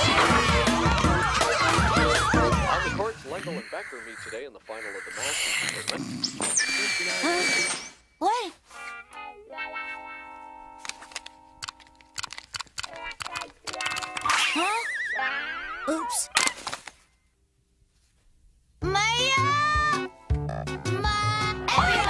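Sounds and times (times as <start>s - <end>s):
cartoon music: 0.0s - 3.1s
wordless voice sounds: 2.7s - 8.6s
sharp clicks: 10.9s - 14.3s.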